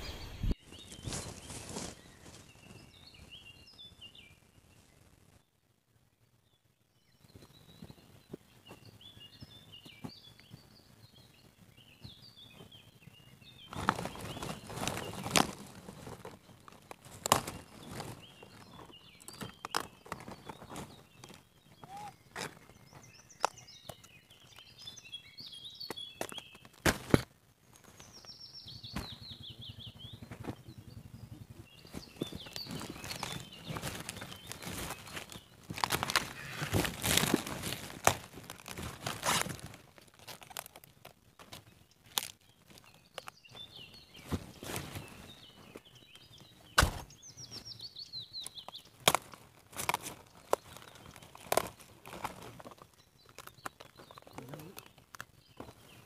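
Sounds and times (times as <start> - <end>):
footsteps in garden plants: 0.0 - 3.3, 13.6 - 25.1, 31.8 - 47.8, 48.4 - 56.0
rustling leaves: 0.0 - 5.0, 13.6 - 23.8, 31.7 - 56.0
birds chirping: 0.0 - 5.6, 6.2 - 56.0
falling bird call: 32.8 - 37.9.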